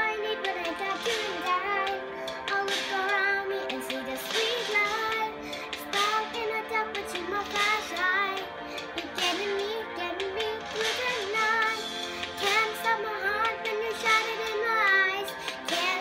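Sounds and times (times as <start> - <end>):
girl singing: 0.0 - 16.0.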